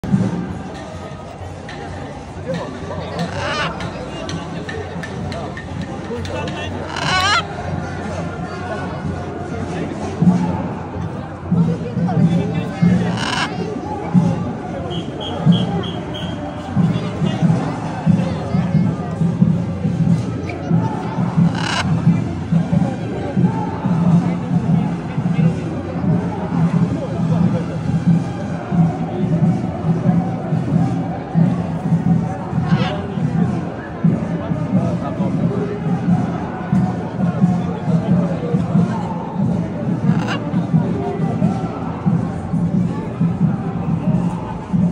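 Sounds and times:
crowd chatter: 0.0 - 44.9
macaw squawk: 3.2 - 4.0, 6.7 - 7.5, 13.1 - 13.6, 21.4 - 21.9, 40.1 - 40.4.

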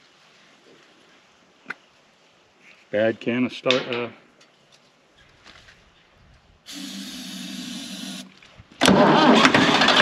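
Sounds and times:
aerosol spray hiss: 6.7 - 8.3.

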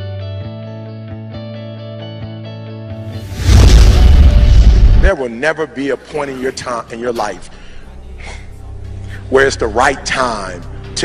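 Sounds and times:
deep explosion boom: 3.2 - 5.1.

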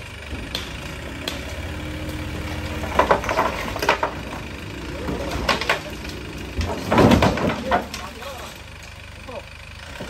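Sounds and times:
truck engine idling: 0.0 - 10.0
stones clattering: 2.5 - 4.4.

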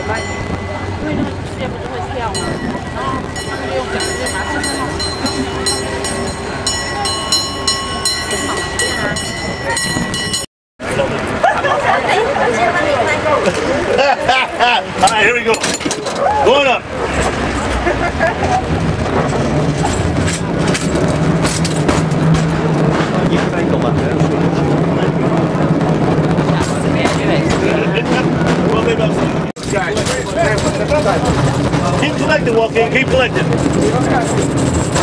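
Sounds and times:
cable car rumbling on track: 0.0 - 35.0
passengers' voices: 0.0 - 35.0.

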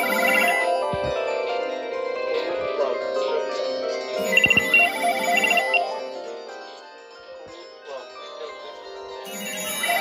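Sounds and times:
rapid high beeping ring: 0.0 - 0.8, 4.2 - 6.1, 9.3 - 10.0
telephones ringing: 0.0 - 0.8, 4.2 - 6.0, 9.3 - 10.0.

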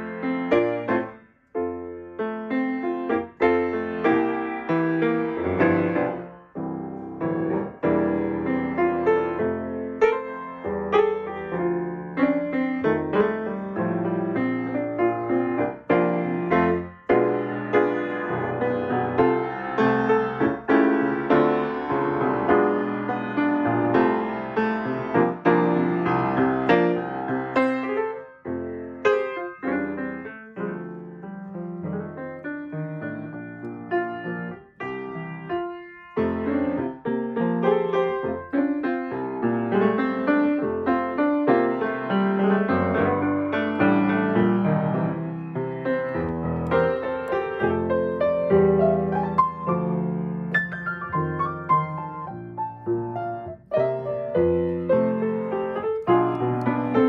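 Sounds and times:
grand piano playing: 0.0 - 57.0.

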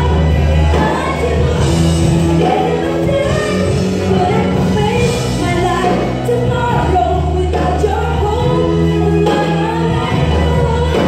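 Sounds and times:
electric bass low notes: 0.0 - 11.0
live band accompaniment: 0.0 - 11.0
woman singing into microphone: 0.0 - 11.0.

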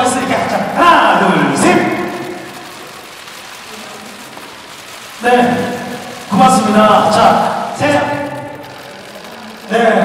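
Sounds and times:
camera shutters clicking rapidly: 0.0 - 10.0.

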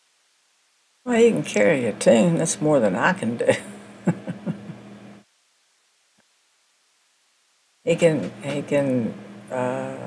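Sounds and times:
woman chuckling: 3.5 - 4.9.

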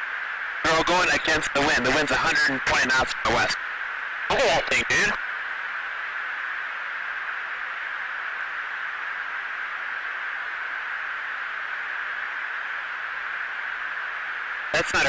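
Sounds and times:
radio intercom hiss: 0.6 - 3.6, 4.2 - 5.2, 14.6 - 15.0.

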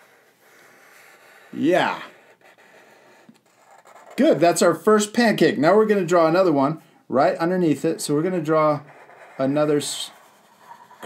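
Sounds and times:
marker scratching on paper: 0.0 - 5.1, 7.8 - 11.0.

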